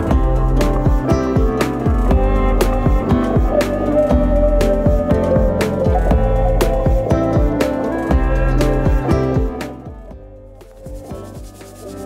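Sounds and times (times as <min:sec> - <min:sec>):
faint background music: 0:00.0 - 0:12.0
brush scrubbing tile grout: 0:10.9 - 0:12.0.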